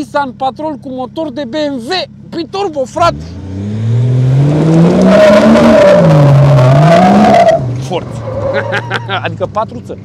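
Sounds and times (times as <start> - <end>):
engine accelerating hard: 2.9 - 9.2.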